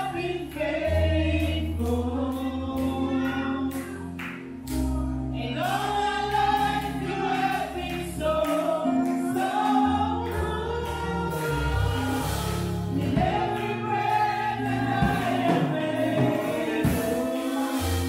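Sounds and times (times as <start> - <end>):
women singing gospel: 0.0 - 18.0.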